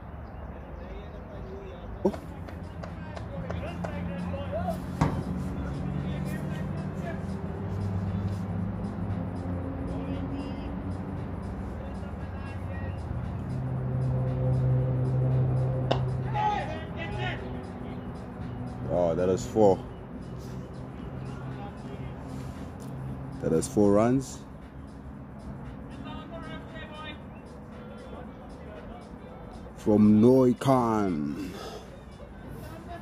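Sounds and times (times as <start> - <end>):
sharp knocks: 5.0 - 5.4
faint distant voices: 25.8 - 29.9.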